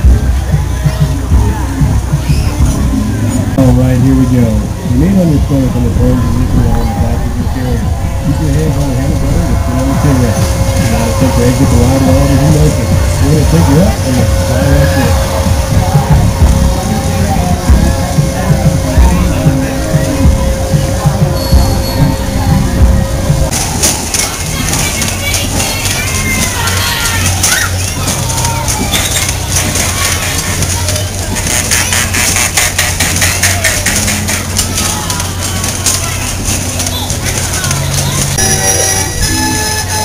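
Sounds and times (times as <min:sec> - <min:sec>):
fairground music: 0:00.0 - 0:40.0
ride machinery: 0:00.0 - 0:40.0
voices: 0:00.0 - 0:40.0
rapid ticking: 0:07.8 - 0:40.0.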